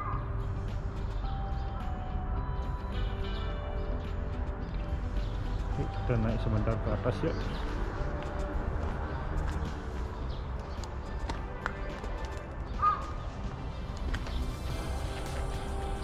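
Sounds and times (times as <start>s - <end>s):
soft background music: 0.0s - 16.0s.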